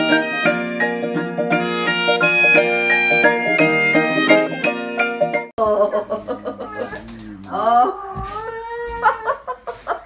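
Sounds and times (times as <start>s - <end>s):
baby whining: 6.6s - 9.4s.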